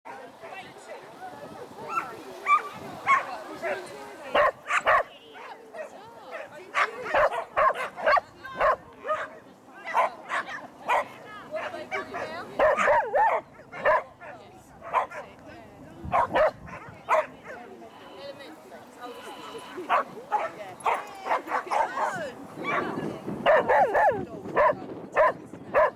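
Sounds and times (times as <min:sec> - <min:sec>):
dog barking: 0:01.9 - 0:03.3, 0:04.4 - 0:05.6, 0:06.3 - 0:11.2, 0:11.9 - 0:15.3, 0:16.1 - 0:17.6, 0:19.9 - 0:25.9.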